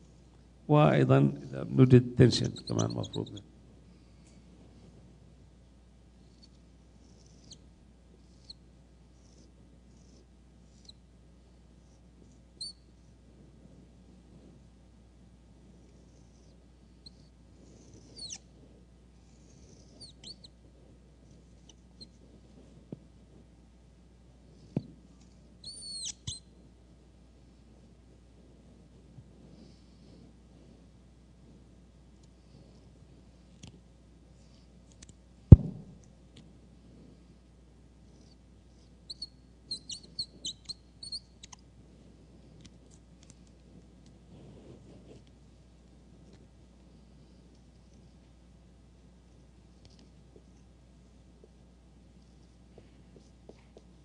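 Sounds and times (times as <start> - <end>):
marker pen squeaking: 2.4 - 3.5, 7.2 - 7.6, 12.6 - 12.9, 17.9 - 18.5, 19.7 - 20.6, 25.3 - 26.5, 39.1 - 41.6.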